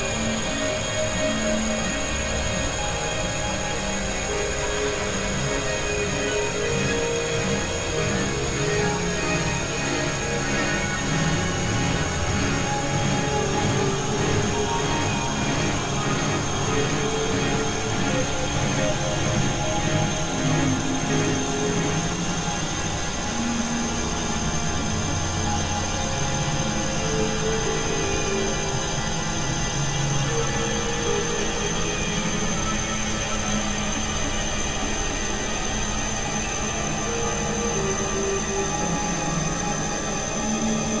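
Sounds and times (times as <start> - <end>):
steady high whine: 0.0 - 41.0
synthesizer drone music: 0.0 - 41.0.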